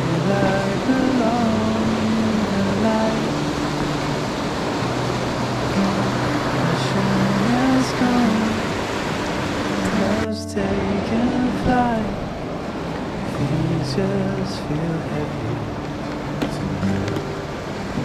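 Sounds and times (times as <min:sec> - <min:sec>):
river rushing over rapids: 0:00.0 - 0:18.0.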